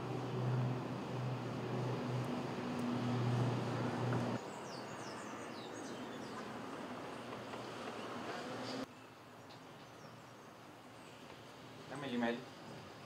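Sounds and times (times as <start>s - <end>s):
low traffic hum: 0.0s - 13.0s
small birds chirping: 4.3s - 6.6s, 7.2s - 13.0s.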